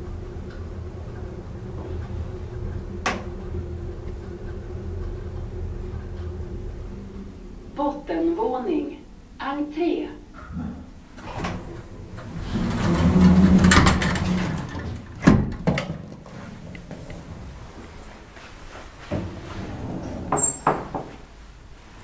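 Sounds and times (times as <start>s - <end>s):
elevator door sliding rumble: 0.0s - 9.4s, 10.3s - 21.9s.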